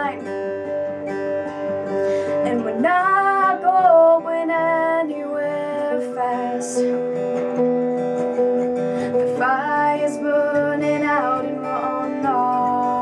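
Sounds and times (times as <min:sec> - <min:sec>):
acoustic guitars strummed and picked: 0:00.0 - 0:13.0
woman singing a wavering note: 0:09.3 - 0:13.0.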